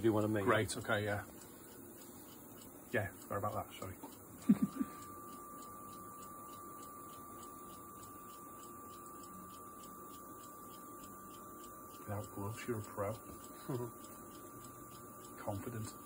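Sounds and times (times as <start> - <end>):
person laughing: 4.4 - 5.0, 13.6 - 14.0.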